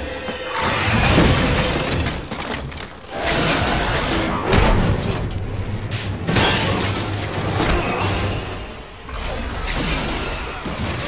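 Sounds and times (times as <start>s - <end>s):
crashing through plastic crates: 0.7s - 8.0s.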